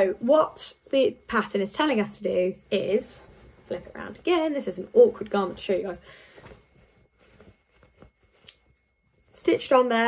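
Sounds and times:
fabric rustling: 0:00.0 - 0:10.0.

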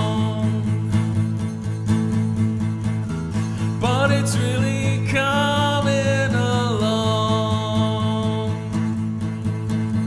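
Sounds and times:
person singing: 0:00.0 - 0:01.0, 0:03.6 - 0:08.8
acoustic guitar strumming: 0:00.0 - 0:10.0.

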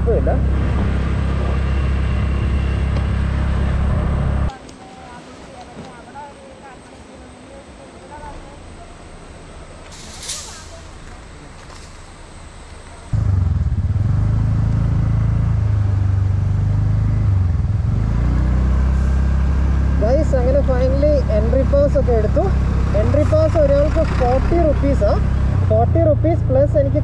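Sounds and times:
scooter engine rumble: 0:00.0 - 0:27.0
rustle: 0:09.8 - 0:13.1.

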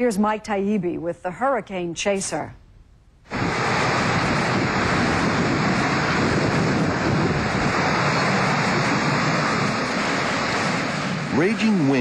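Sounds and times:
wind blowing across microphone: 0:03.2 - 0:12.0.

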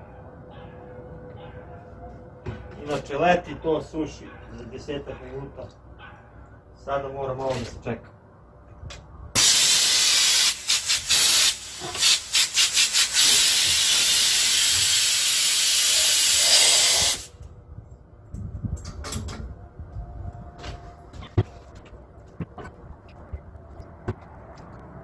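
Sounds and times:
spray gun air hissing: 0:09.4 - 0:17.3.

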